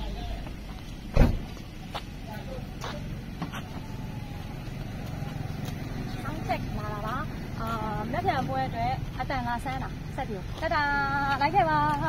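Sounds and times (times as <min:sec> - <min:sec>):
vehicle engine rumble: 0:00.0 - 0:12.0
loud thump: 0:01.1 - 0:01.6
woman's voice: 0:06.0 - 0:12.0.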